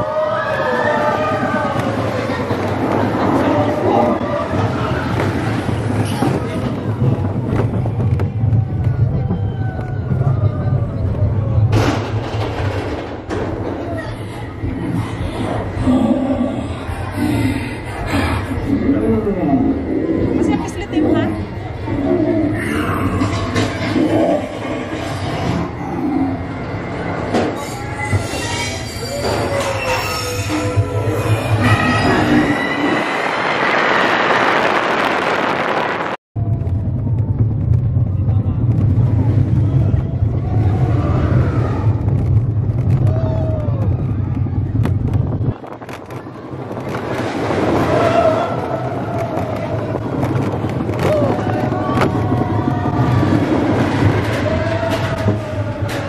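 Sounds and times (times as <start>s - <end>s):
roller coaster wheels rumbling on rail: 0.0s - 56.0s.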